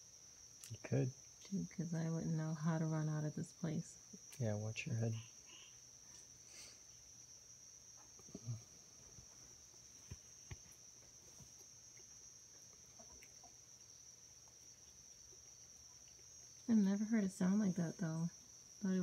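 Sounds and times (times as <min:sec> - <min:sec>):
faint high-pitched insect chorus: 0:00.0 - 0:19.0.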